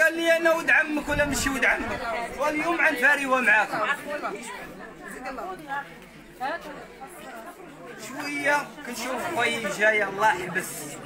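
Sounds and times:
overlapping chatter of a group: 0:00.0 - 0:11.0.

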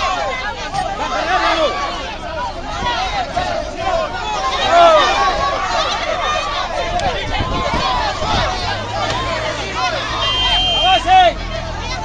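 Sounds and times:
people shouting in a scuffle: 0:00.0 - 0:12.0.

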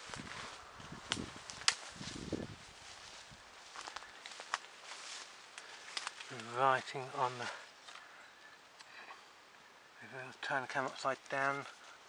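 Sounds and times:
footsteps on rough ground: 0:00.0 - 0:08.9.

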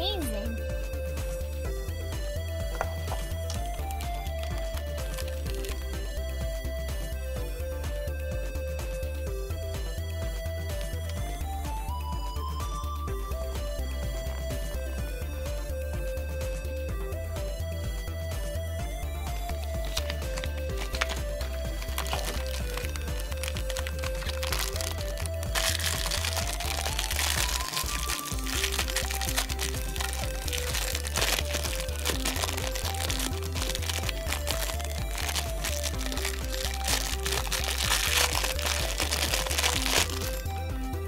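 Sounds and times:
background music with steady beat: 0:00.0 - 0:41.0
plastic wrapper crinkling: 0:02.8 - 0:05.9, 0:19.8 - 0:40.5.

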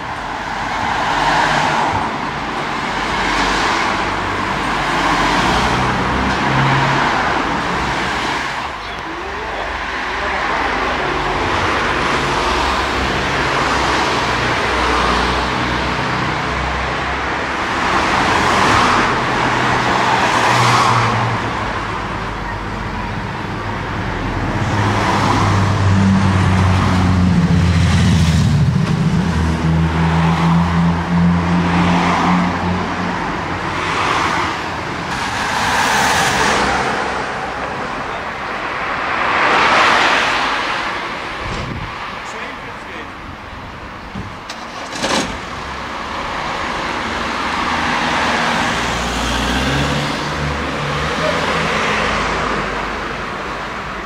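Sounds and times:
cars passing: 0:00.0 - 0:54.0.

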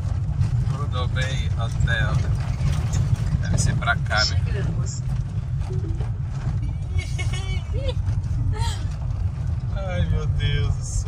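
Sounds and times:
engine and tyres on gravel rumbling: 0:00.0 - 0:11.0.

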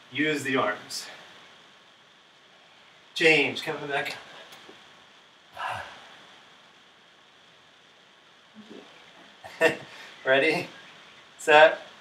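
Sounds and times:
person breathy exhale: 0:05.6 - 0:06.2.

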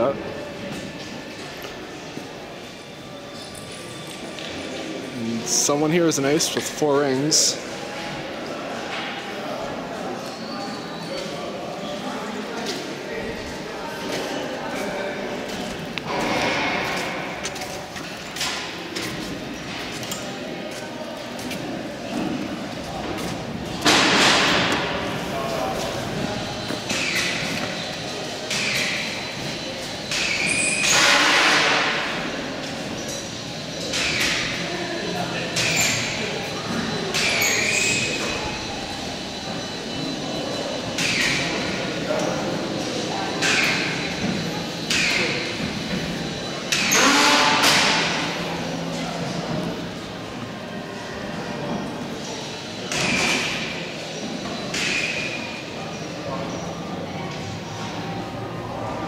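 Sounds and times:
indistinct echoing voices: 0:00.0 - 0:59.0.

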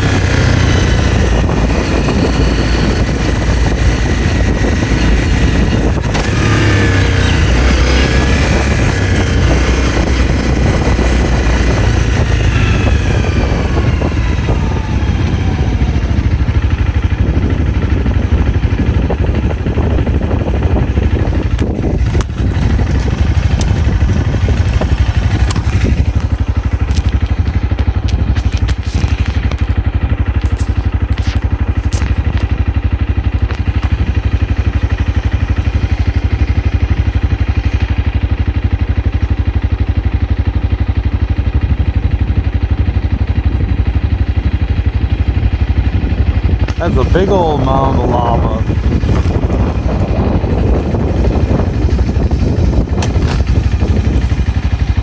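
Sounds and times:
car interior rumble: 0:00.0 - 0:38.0, 0:41.6 - 0:55.0.

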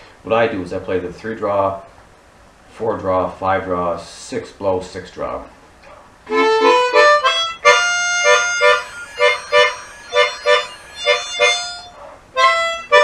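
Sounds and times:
harmonica playing blues: 0:06.3 - 0:13.0.

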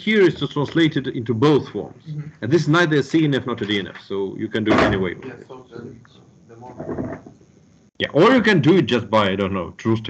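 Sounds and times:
muffled speech over video call: 0:00.0 - 0:07.3, 0:08.0 - 0:10.0.

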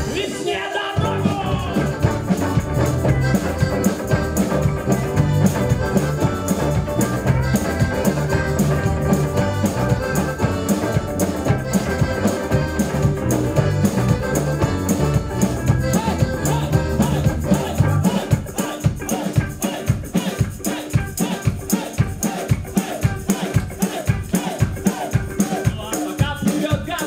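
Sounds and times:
accordion: 0:00.0 - 0:27.0
drum kit: 0:00.0 - 0:27.0
guitars: 0:00.0 - 0:27.0.

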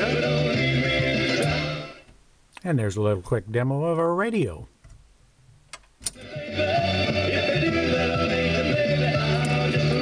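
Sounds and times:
guitar music from radio speaker: 0:00.0 - 0:02.0, 0:06.1 - 0:10.0.

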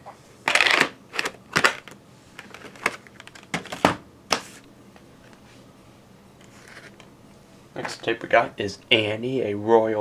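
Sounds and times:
plastic cases clacking: 0:00.5 - 0:04.0
scraping rustle: 0:06.4 - 0:07.0.

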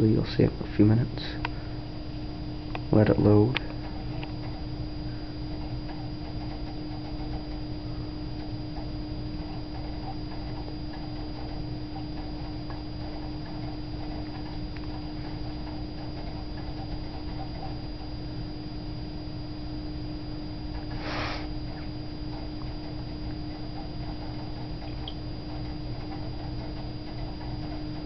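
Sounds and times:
cd drive ticking: 0:00.0 - 0:28.0
computer hum: 0:00.0 - 0:28.0
faint high whine: 0:00.0 - 0:28.0.

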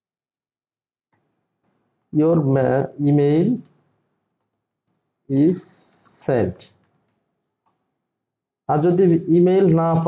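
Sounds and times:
man speaking: 0:02.2 - 0:03.7, 0:05.3 - 0:06.7, 0:08.7 - 0:10.0.

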